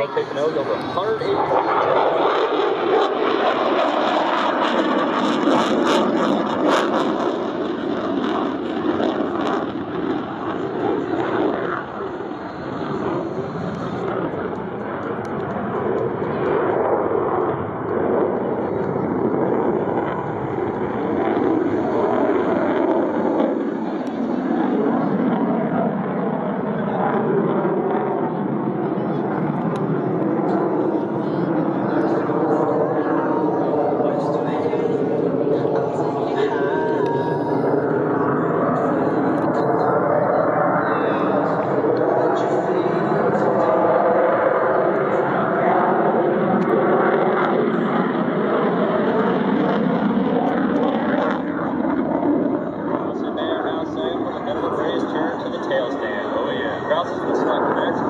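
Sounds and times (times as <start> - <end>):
jet engine roar: 0.0 - 58.0
indistinct voices: 30.5 - 44.4.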